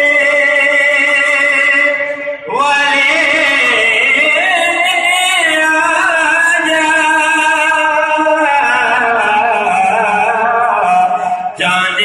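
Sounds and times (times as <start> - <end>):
man singing devotional chant: 0.0 - 12.0.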